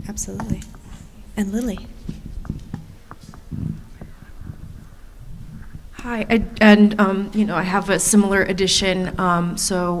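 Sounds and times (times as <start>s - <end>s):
low knocks and rustling: 0.3s - 6.0s.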